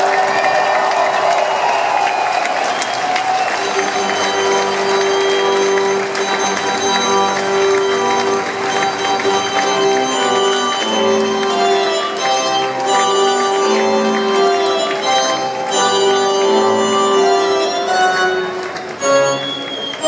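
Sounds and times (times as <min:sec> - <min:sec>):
audience cheering and applauding: 0:00.0 - 0:20.0
live band holding chords: 0:03.5 - 0:20.0.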